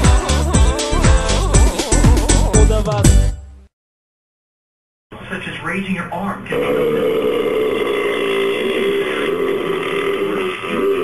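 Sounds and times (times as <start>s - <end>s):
man's throaty vocal sound: 0.0s - 3.1s, 6.5s - 11.0s.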